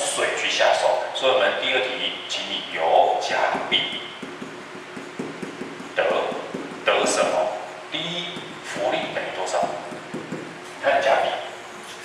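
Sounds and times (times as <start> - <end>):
pen tapping on whiteboard screen: 3.5 - 6.7, 9.6 - 10.6.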